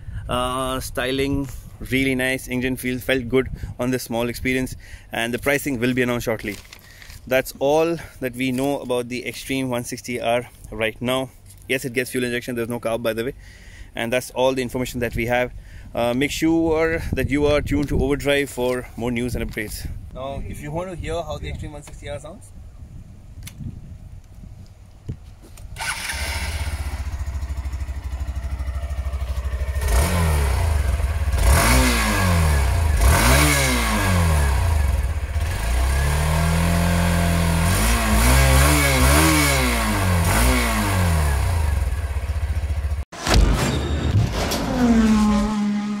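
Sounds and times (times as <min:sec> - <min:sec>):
motorcycle engine idling and revving: 0:25.6 - 0:43.1, 0:44.6 - 0:46.0.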